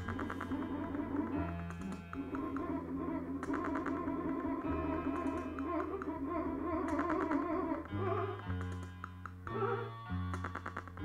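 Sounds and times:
experimental electronic noise music: 0.0 - 11.0.

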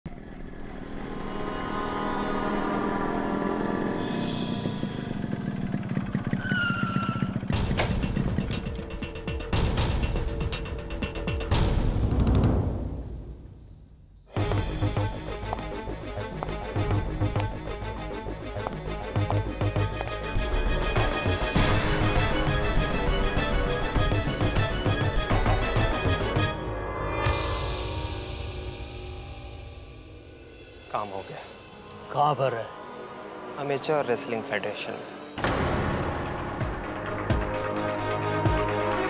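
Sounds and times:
crickets chirping: 0.1 - 21.2, 24.0 - 38.4
background music: 0.2 - 13.3, 14.3 - 39.0.

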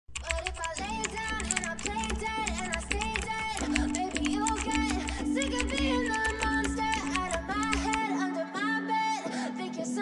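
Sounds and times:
keyboard typing clicks: 0.1 - 8.0.

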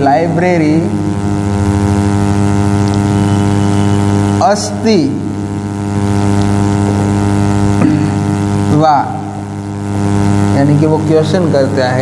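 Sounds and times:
loud electrical hum: 0.0 - 12.0.

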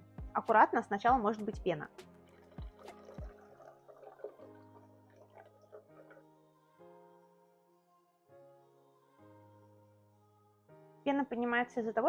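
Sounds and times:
soft background music: 0.0 - 12.0
sparkling water pouring and fizzing: 1.3 - 6.2.

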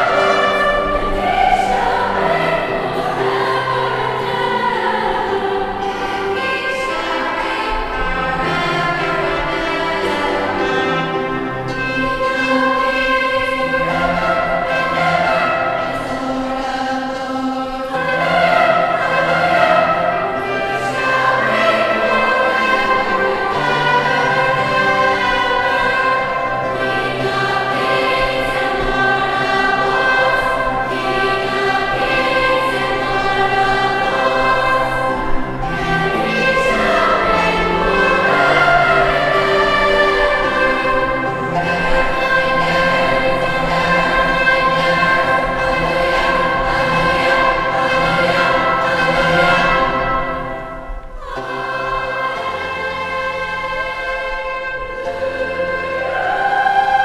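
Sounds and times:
girls' choir singing: 0.0 - 57.0.

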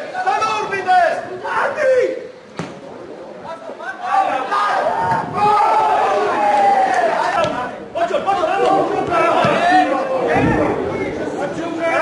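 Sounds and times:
people shouting: 3.8 - 10.8.

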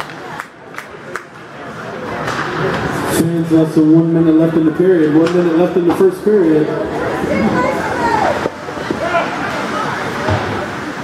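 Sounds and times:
chatter of spectators: 0.0 - 11.0.

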